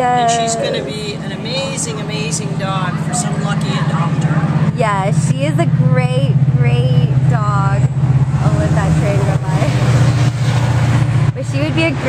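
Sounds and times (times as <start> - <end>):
faint voices: 0.0 - 7.8
engine idling: 0.0 - 12.0.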